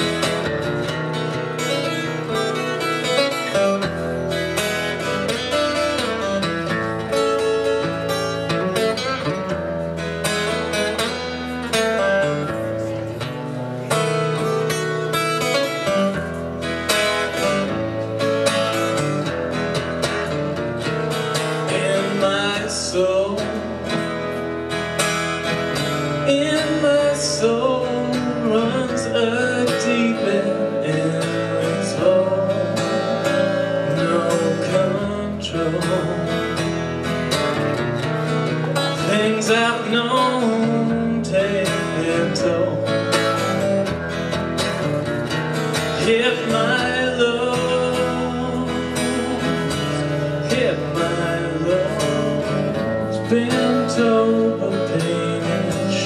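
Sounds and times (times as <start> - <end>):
acoustic blues guitar: 0.0 - 56.0.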